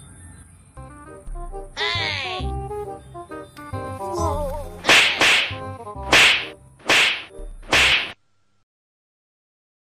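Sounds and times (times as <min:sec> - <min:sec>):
faint background music: 0:00.8 - 0:08.0
sharp slap hits: 0:04.8 - 0:08.2.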